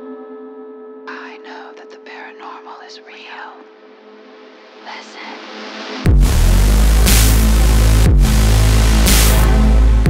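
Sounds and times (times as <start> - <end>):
whispered voices: 4.8 - 5.4.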